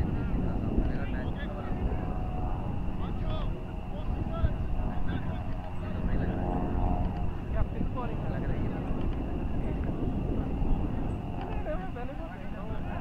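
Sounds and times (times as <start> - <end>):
faint steady drone: 0.0 - 13.0
wind rumbling on microphone: 0.0 - 13.0.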